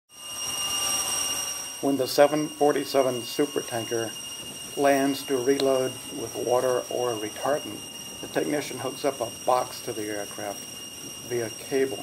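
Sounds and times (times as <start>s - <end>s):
high-pitched machinery whine: 0.1s - 12.0s
steady rushing noise: 0.2s - 12.0s.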